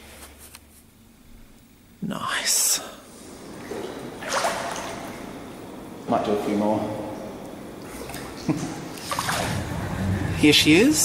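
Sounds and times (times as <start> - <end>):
pool water lapping: 3.0 - 11.0
loud water splash: 3.1 - 6.4, 7.8 - 10.8.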